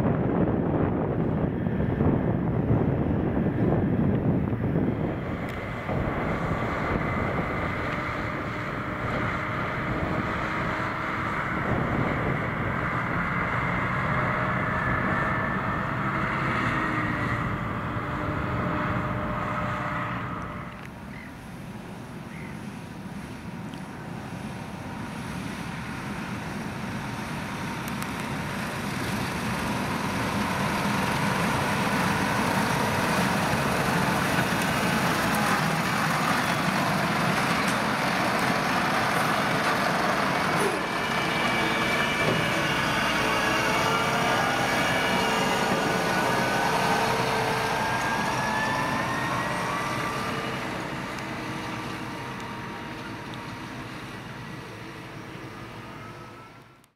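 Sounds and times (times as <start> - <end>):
tractor engine under load: 0.0 - 56.9
whine climbing in pitch: 32.1 - 56.9.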